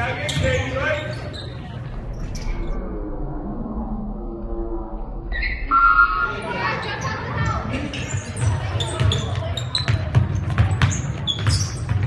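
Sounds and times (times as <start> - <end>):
rumble of basketball play: 0.0 - 12.0
high-pitched squeal: 2.2 - 6.7.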